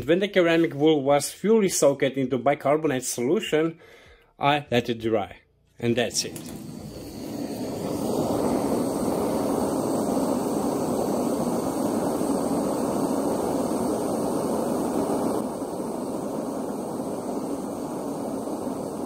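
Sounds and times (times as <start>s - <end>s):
blowtorch flame hissing: 6.0s - 19.0s.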